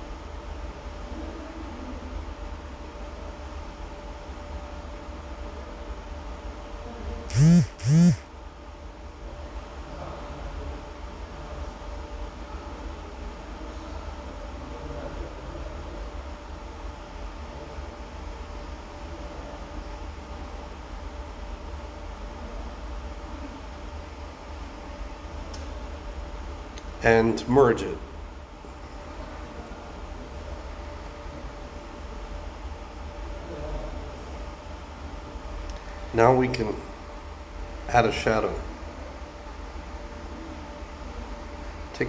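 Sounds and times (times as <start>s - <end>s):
low hum with hiss: 0.0s - 42.0s
short loud pitched sounds: 7.3s - 8.2s.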